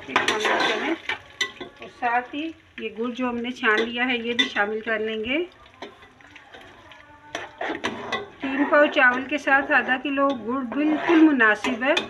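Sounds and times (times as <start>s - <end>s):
spatula clinking on metal pot: 0.0s - 2.0s, 3.6s - 4.9s, 5.7s - 12.0s
syrup pouring into pot: 4.2s - 8.4s.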